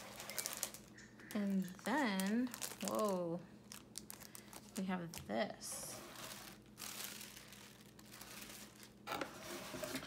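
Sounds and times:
paper and plastic crinkling: 0:00.0 - 0:10.0.

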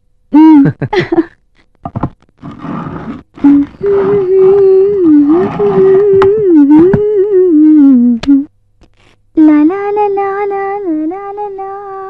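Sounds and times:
person humming: 0:00.3 - 0:01.3, 0:03.4 - 0:08.5, 0:09.4 - 0:12.0.

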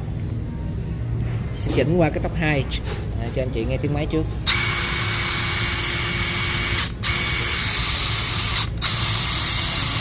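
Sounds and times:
impact wrench spinning: 0:04.4 - 0:10.0.

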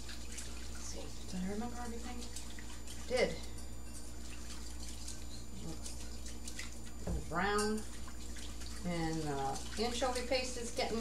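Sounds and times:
liquid sloshing in bowl: 0:00.0 - 0:11.0
whisk ticking against bowl: 0:00.0 - 0:11.0.

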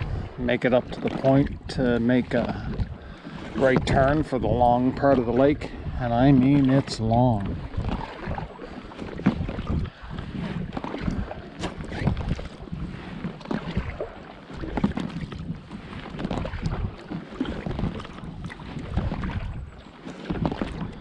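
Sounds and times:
paddle splashing through water: 0:00.0 - 0:21.0
wind on microphone: 0:00.0 - 0:21.0.

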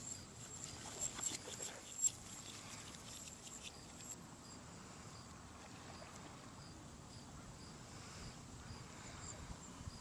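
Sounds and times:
high thin insect chirp: 0:00.0 - 0:05.3.

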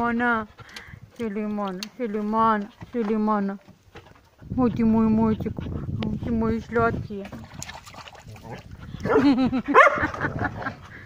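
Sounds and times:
dogs barking: 0:09.0 - 0:10.3.

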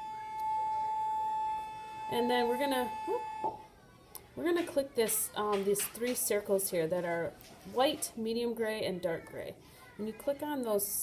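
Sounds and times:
steady whistle-like tone: 0:00.0 - 0:03.7.

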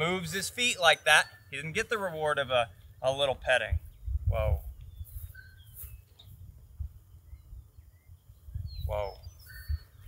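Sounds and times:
faint bird chirps: 0:00.6 - 0:02.0, 0:02.6 - 0:10.0
wind rumble on microphone: 0:02.7 - 0:10.0.

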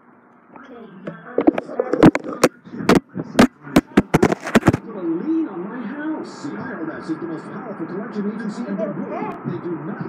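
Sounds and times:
person talking: 0:01.1 - 0:04.8
phone knocking and clicking: 0:01.1 - 0:04.8.

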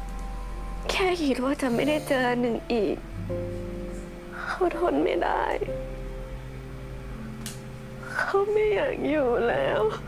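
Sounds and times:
soft background music chord: 0:00.0 - 0:10.0.

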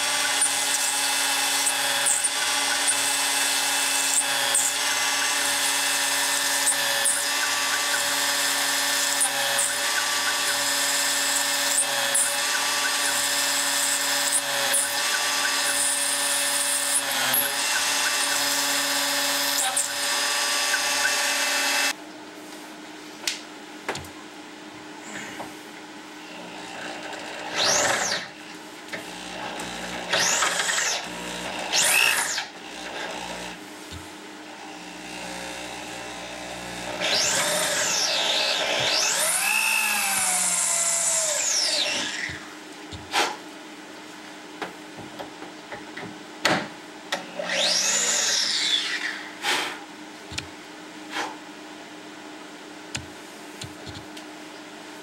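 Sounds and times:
handheld drill speeding up: 0:00.0 - 0:21.9, 0:36.8 - 0:42.4
router spindle cutting metal: 0:00.0 - 0:22.0, 0:26.4 - 0:28.3, 0:29.0 - 0:33.6, 0:34.6 - 0:42.5, 0:47.3 - 0:49.2.

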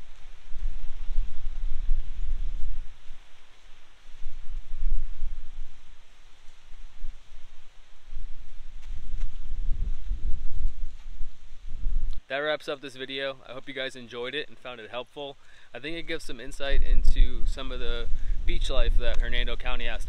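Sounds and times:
wind buffeting microphone: 0:00.0 - 0:12.3, 0:15.9 - 0:20.0.

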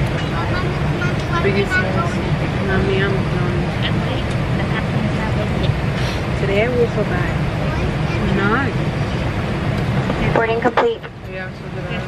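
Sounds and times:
airliner cabin rumble: 0:00.0 - 0:12.0.

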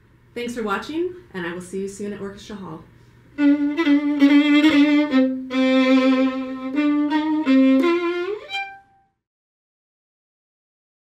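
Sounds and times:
violin: 0:03.4 - 0:09.0.

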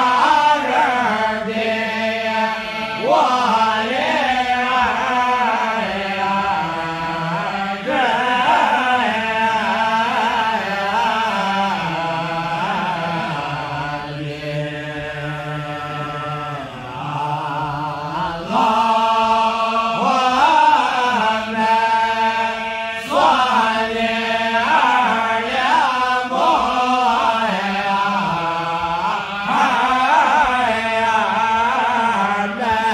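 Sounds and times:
men chanting devotionally: 0:00.0 - 0:32.9.

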